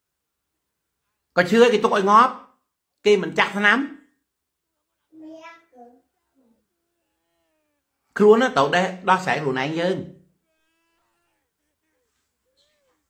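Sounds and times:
person talking: 0:08.1 - 0:10.1.

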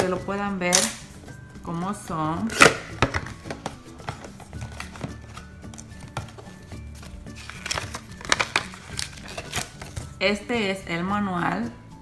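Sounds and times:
soft background music: 0:00.0 - 0:12.0
paper and cardboard rustling: 0:03.0 - 0:10.2.

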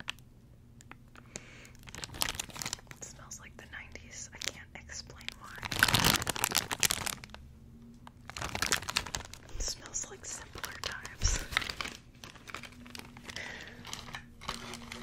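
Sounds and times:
plastic bag crinkling and tearing: 0:01.6 - 0:03.5, 0:04.1 - 0:15.0.

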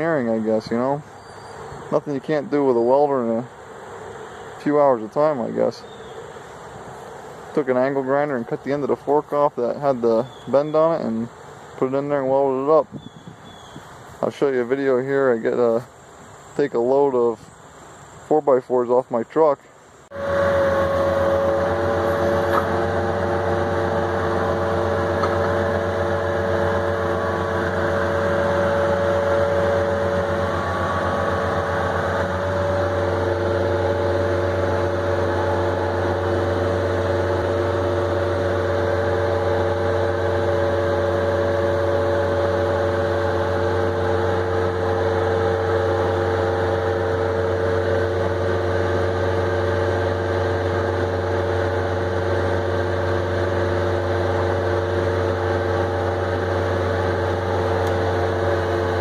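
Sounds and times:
loader engine running: 0:00.0 - 0:18.3, 0:20.0 - 0:59.0
higher tones: 0:20.1 - 0:49.6.

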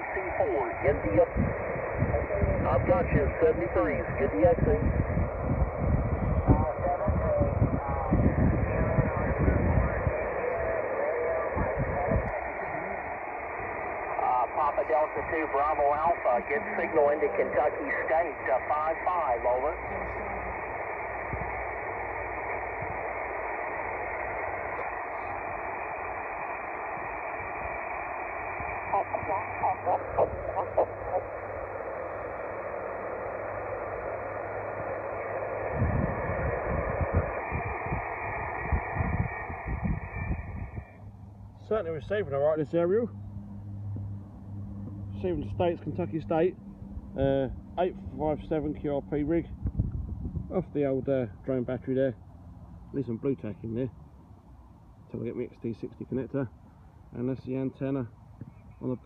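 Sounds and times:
weak voice over radio: 0:00.0 - 0:05.3, 0:05.9 - 0:13.1, 0:14.1 - 0:21.0, 0:28.7 - 0:33.8
radio static: 0:00.0 - 0:41.0, 0:41.6 - 0:43.0, 0:44.9 - 0:46.6
low rumble on microphone: 0:00.0 - 0:51.7.

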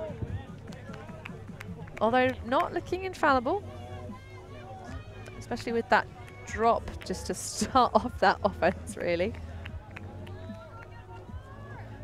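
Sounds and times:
faint crowd and player voices: 0:00.0 - 0:12.0.

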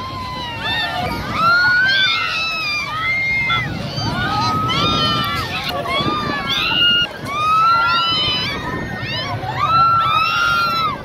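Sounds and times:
crowd din: 0:00.0 - 0:11.0
riders screaming and shouting: 0:00.0 - 0:11.0.

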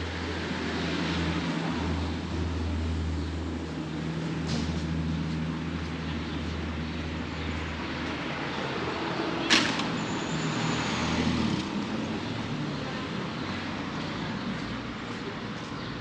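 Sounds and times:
motor traffic hum: 0:00.0 - 0:16.0.

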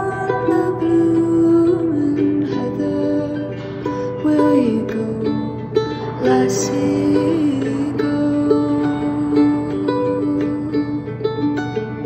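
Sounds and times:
mandolin folk tune: 0:00.0 - 0:12.0.

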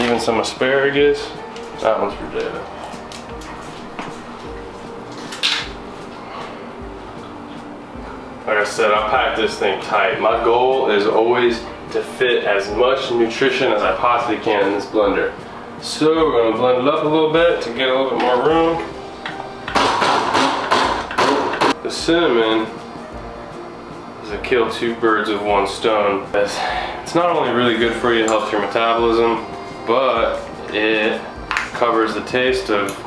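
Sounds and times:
background music with sustained tones: 0:00.0 - 0:33.0
blender chopping vegetables: 0:19.8 - 0:21.7.

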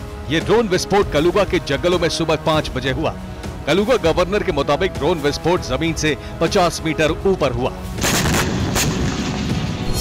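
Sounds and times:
dramatic background music: 0:00.0 - 0:10.0
sharp cracks: 0:08.0 - 0:09.8
explosion boom and rumble: 0:08.0 - 0:10.0.

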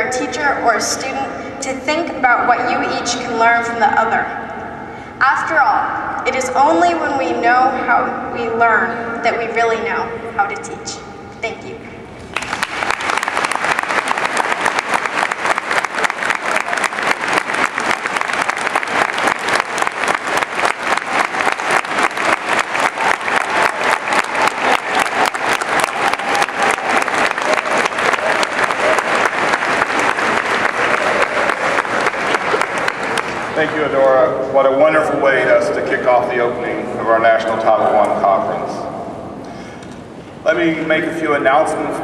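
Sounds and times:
large audience applauding: 0:12.3 - 0:34.0.

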